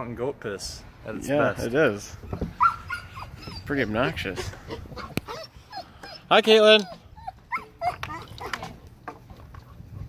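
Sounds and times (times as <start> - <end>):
small dog whimpering: 2.6 - 8.8.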